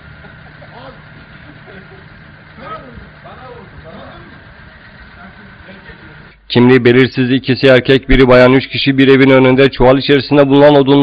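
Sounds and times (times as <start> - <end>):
vehicle engine idling: 0.0 - 6.4
faint voices talking: 0.3 - 6.4.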